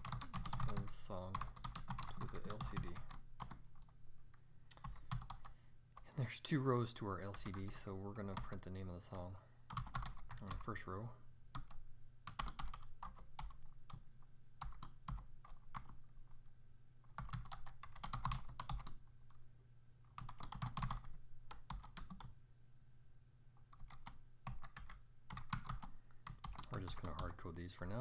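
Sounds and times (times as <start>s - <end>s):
typing on keyboard: 0.0s - 3.9s, 4.8s - 5.5s, 9.7s - 10.6s, 11.6s - 14.0s, 14.6s - 16.0s, 17.1s - 19.0s, 20.1s - 22.3s, 23.7s - 27.3s
low steady hum: 0.0s - 28.0s.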